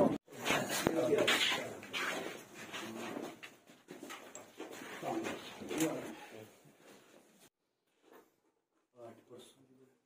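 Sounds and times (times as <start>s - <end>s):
men talking indistinctly: 0.0s - 2.1s.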